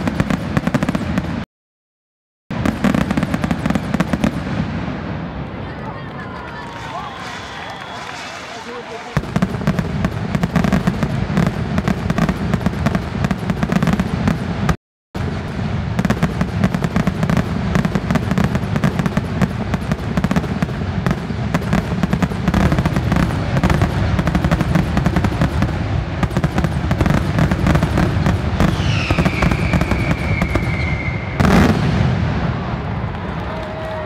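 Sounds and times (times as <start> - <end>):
fireworks bangs and crackles: 0.0 - 1.5, 2.5 - 34.0
falling firework whistle: 6.5 - 9.7, 28.6 - 34.0.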